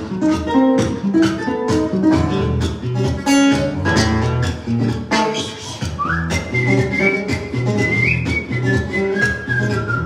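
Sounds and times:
strummed acoustic guitar: 0.0 - 10.0
man whistling a melody: 5.4 - 10.0.

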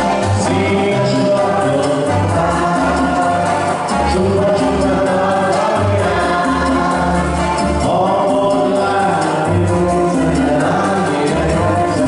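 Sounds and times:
electronic keyboard dance music: 0.0 - 12.0.

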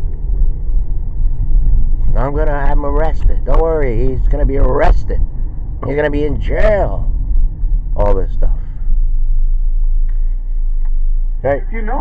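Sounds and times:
loud low rumble: 0.0 - 12.0.

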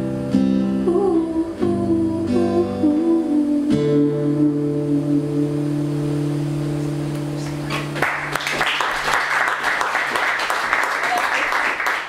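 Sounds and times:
acoustic guitar chord ringing: 0.0 - 8.3
audience applause: 7.6 - 12.0.

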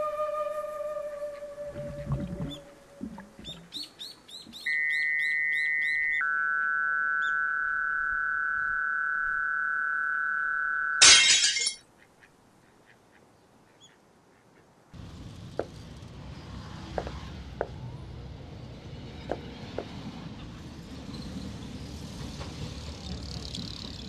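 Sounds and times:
rapid bird-like chirps: 3.4 - 6.2
high electronic tone: 4.7 - 11.0.

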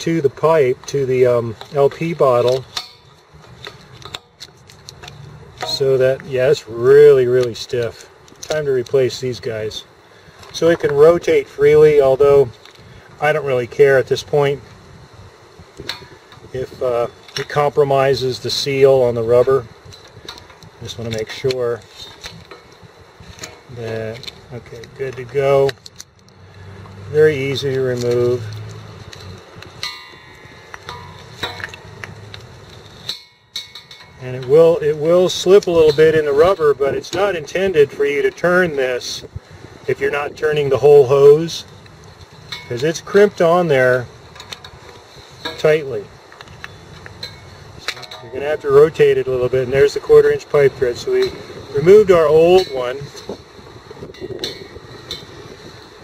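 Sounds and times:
brass hose fitting handled: 0.0 - 6.7, 19.4 - 53.4
outdoor background noise: 0.0 - 56.0
wrench clinking on brass fittings: 29.8 - 39.2.

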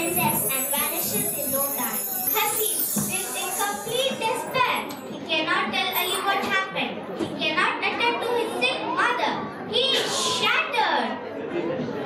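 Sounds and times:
children speaking and calling out: 0.0 - 7.0.

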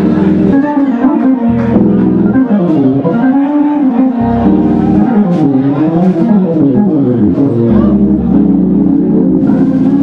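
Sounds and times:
organ playing sustained chords: 0.0 - 10.0.

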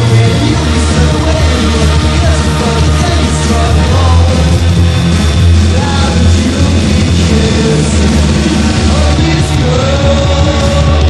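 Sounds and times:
punk rock band playing: 0.0 - 11.0.

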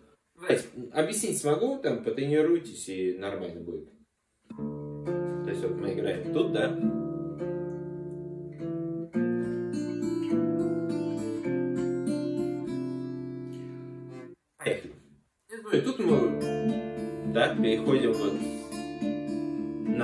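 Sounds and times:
fingerstyle acoustic guitar: 4.5 - 14.4, 16.1 - 20.0.

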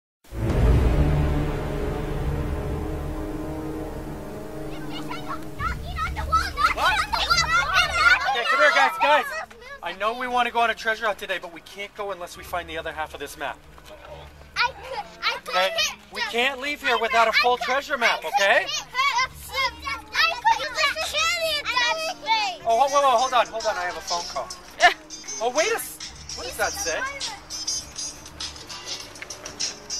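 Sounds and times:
children talking and calling out: 4.0 - 10.5, 14.2 - 29.9.

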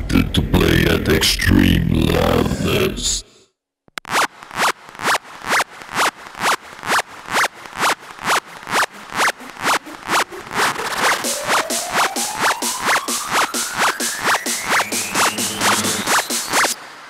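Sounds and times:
hardstyle dance music: 4.1 - 16.8.

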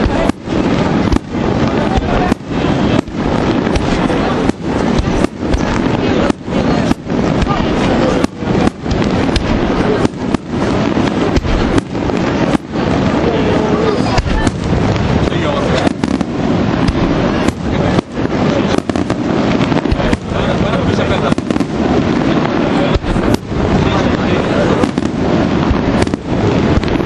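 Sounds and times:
fireworks bangs and crackle: 0.0 - 27.0.

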